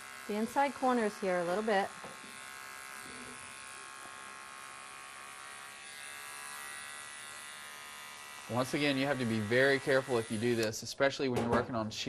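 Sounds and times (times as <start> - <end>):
electric clipper buzzing: 0.0 - 10.8.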